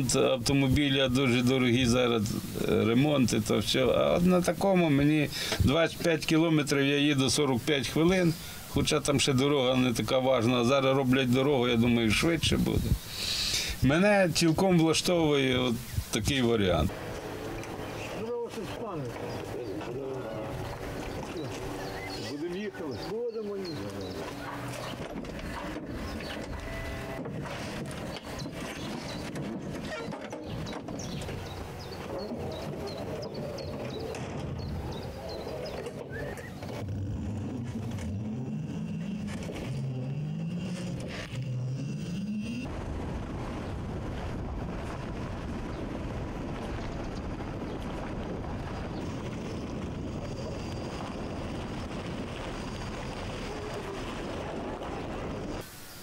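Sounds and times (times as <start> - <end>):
road and tyre noise: 16.3 - 55.7
short rising whines: 34.6 - 43.1.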